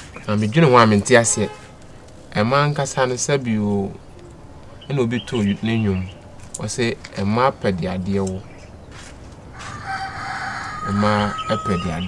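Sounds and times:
man talking: 0:00.2 - 0:01.6, 0:02.3 - 0:04.1, 0:04.8 - 0:08.5, 0:10.8 - 0:12.0
rooster crowing: 0:09.5 - 0:12.0.

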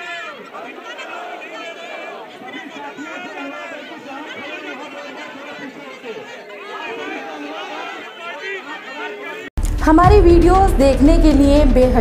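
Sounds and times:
crowd talking over one another: 0:00.0 - 0:11.6.

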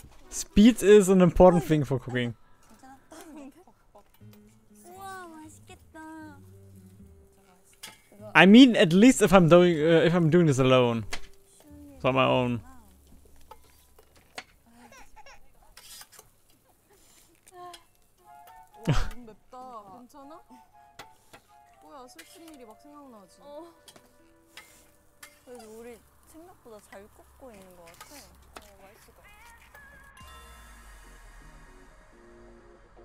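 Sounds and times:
voices talking: 0:00.0 - 0:04.2
background music: 0:00.0 - 0:14.7, 0:17.7 - 0:33.0.

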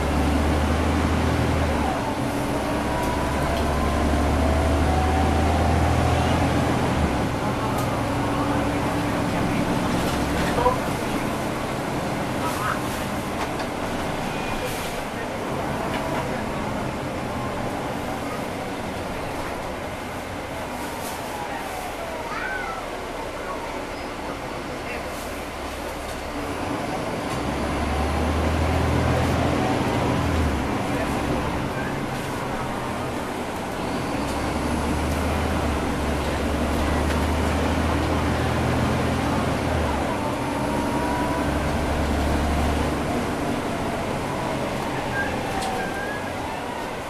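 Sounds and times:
bus diesel engine drone: 0:00.0 - 0:47.0.

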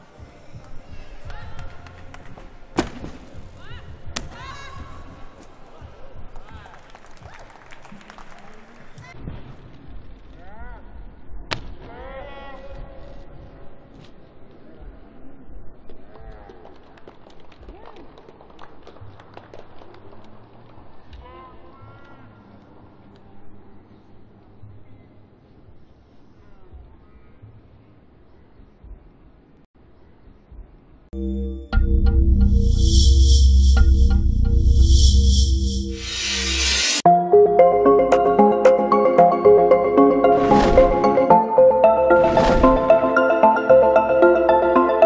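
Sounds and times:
scattered hand claps: 0:06.4 - 0:09.1
background music: 0:31.2 - 0:45.0.

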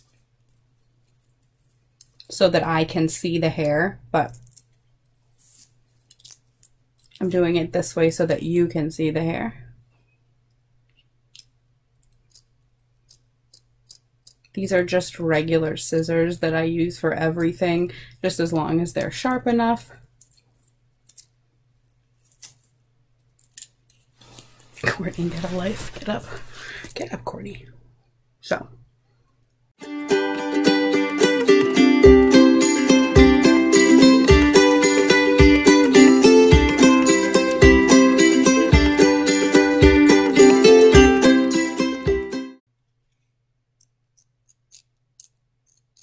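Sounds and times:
scissors snipping lace: 0:11.3 - 0:14.6, 0:20.2 - 0:24.0, 0:43.8 - 0:46.0.

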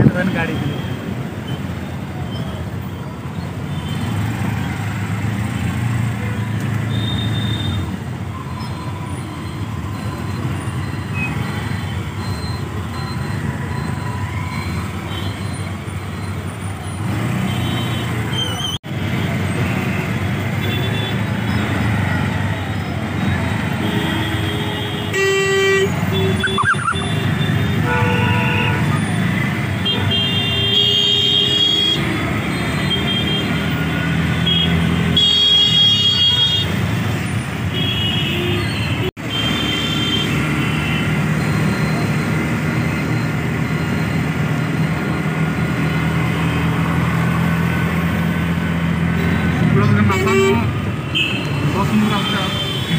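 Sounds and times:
rumble of traffic engines: 0:00.0 - 0:52.9
vehicle horns honking: 0:06.4 - 0:08.0, 0:17.2 - 0:18.7, 0:20.5 - 0:21.3, 0:23.6 - 0:36.9, 0:37.6 - 0:41.3, 0:49.1 - 0:52.9.

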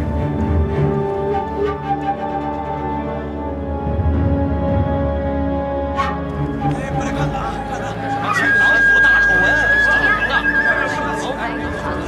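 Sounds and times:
long high tone: 0:07.7 - 0:12.0.

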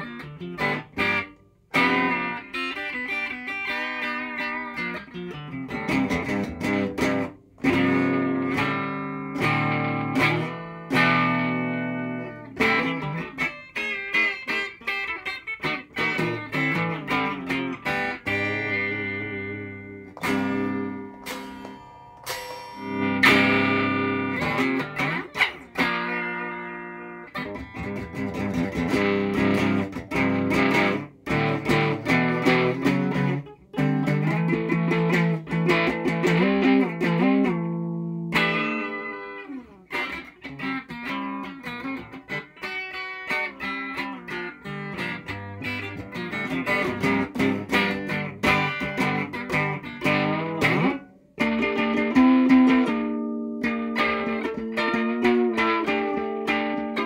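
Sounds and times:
electric guitar chords and riffs: 0:00.0 - 0:57.0.

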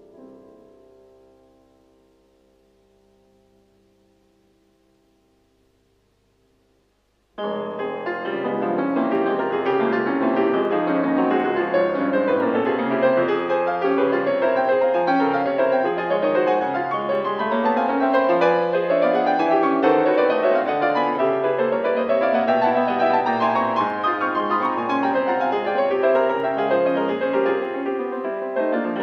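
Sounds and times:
solo piano: 0:00.0 - 0:29.0.

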